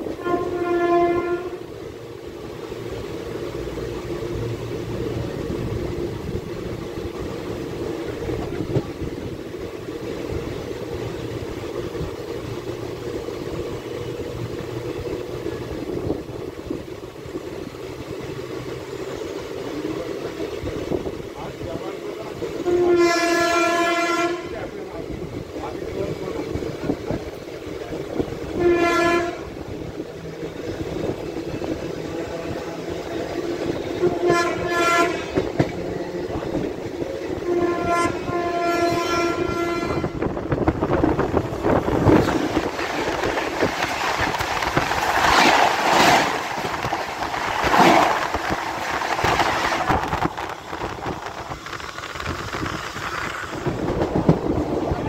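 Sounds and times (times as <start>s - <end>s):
locomotive horn blasts: 0.0s - 1.7s, 22.6s - 24.6s, 28.5s - 29.6s, 33.9s - 35.5s, 37.4s - 40.3s
train wheels clattering on rails: 2.5s - 55.0s.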